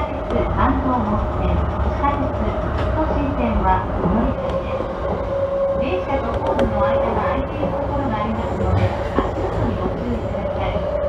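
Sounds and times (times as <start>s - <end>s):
electric train rumbling and whining: 0.0s - 11.0s.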